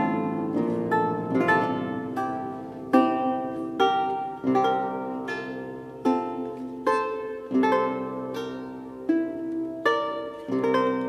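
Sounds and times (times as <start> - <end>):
lute plucking slow chords: 0.0 - 11.0.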